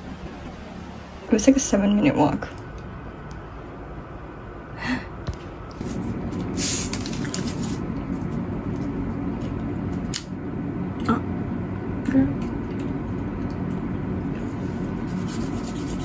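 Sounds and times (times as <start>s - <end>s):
steady low hum: 0.0s - 16.0s
food packaging rustling: 5.8s - 8.8s.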